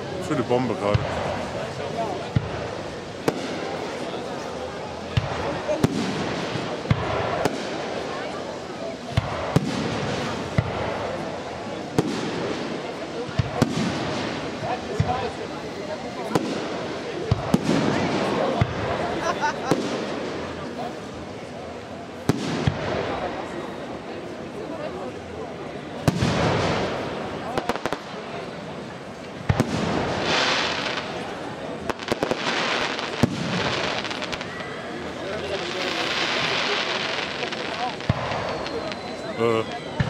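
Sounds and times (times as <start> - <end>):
firework crackling: 0.0 - 25.3, 25.9 - 40.0.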